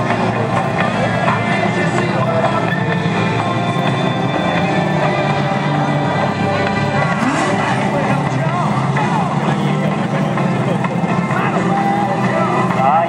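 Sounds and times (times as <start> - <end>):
race car engines droning: 0.0 - 13.0
voices: 0.0 - 13.0.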